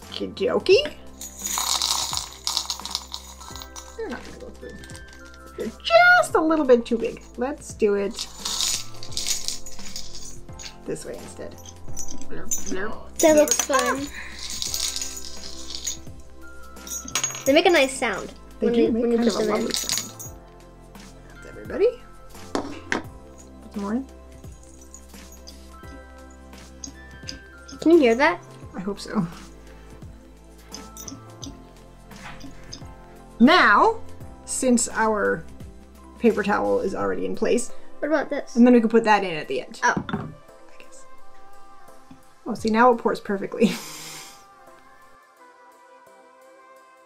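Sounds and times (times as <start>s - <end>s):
soft background music: 0.0s - 47.0s
small metal bells clinking: 1.1s - 5.9s, 8.1s - 20.4s, 21.4s - 31.6s, 32.2s - 33.0s.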